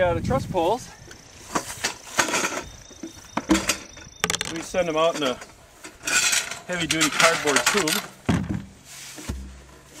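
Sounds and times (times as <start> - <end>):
cardboard tube knocks and scrapes: 8.3 - 10.0.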